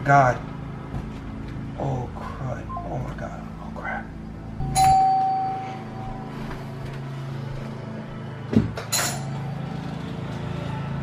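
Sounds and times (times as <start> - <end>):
steady low hum: 0.0 - 11.0
ringing tone: 4.6 - 6.6.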